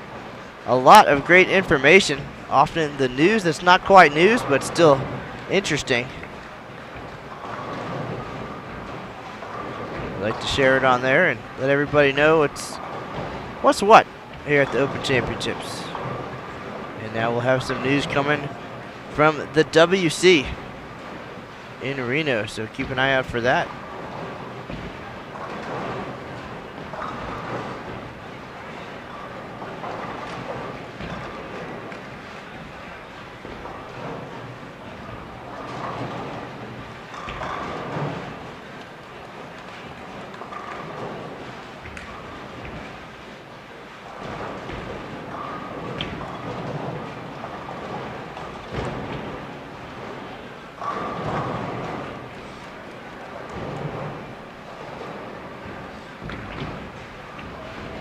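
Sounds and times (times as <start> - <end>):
bowling ball rolling: 0.0 - 58.0.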